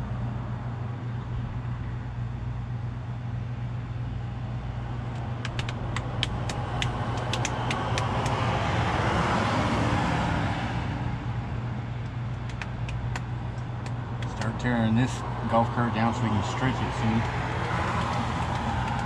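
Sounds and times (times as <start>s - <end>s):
low engine hum: 0.0s - 19.0s
road vehicle passing: 4.4s - 19.0s.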